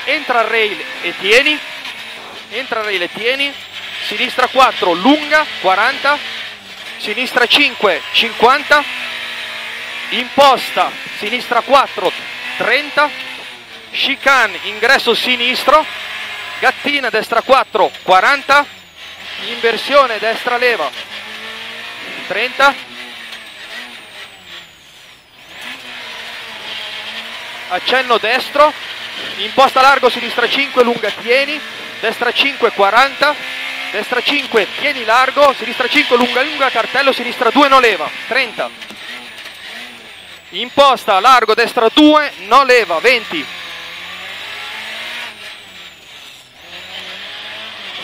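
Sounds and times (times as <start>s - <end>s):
rally car engine revving: 0.0s - 48.0s
road noise: 0.0s - 48.0s.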